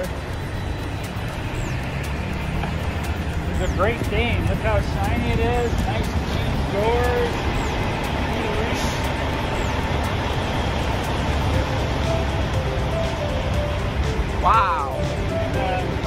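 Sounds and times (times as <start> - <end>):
diesel truck engines idling: 0.0 - 16.0
quiet background music: 0.0 - 16.0.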